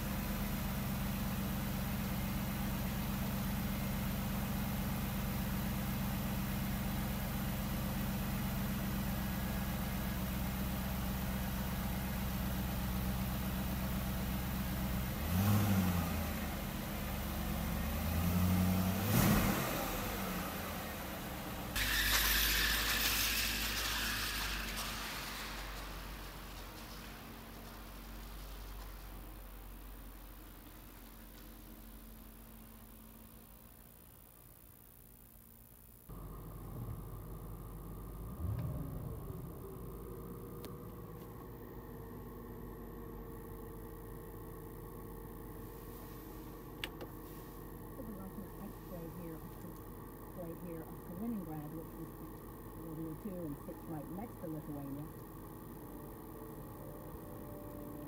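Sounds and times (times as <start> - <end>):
engine heard from inside cabin: 0.0 - 33.2, 35.5 - 58.0
car driving off: 5.3 - 29.3, 36.1 - 49.2
car engine revving: 14.8 - 29.0, 36.1 - 44.4.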